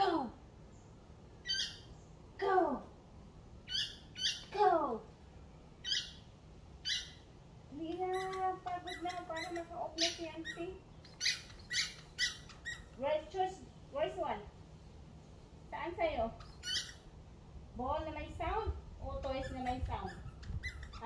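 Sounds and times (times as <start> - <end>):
squeaky dog toy squeaking: 8.0 - 13.0, 16.4 - 17.0, 19.3 - 21.0.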